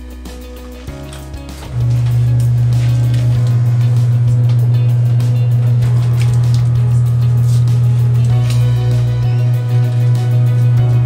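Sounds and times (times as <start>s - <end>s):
background music: 0.0s - 11.0s
washing machine humming: 0.0s - 11.0s.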